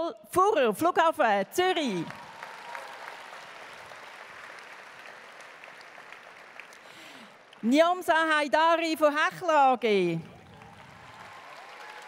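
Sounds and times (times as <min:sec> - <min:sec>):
audience applauding: 0:02.0 - 0:07.6, 0:10.2 - 0:12.0.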